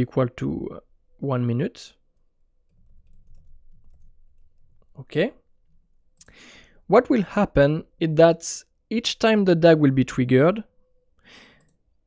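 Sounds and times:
computer keyboard typing: 0:02.7 - 0:04.8.

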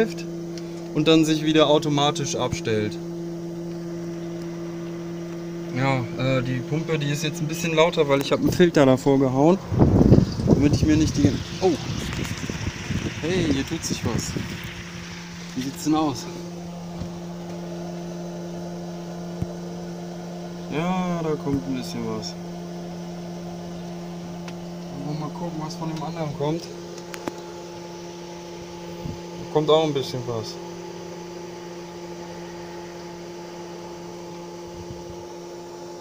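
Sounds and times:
electric water pump humming: 0:00.0 - 0:36.0.

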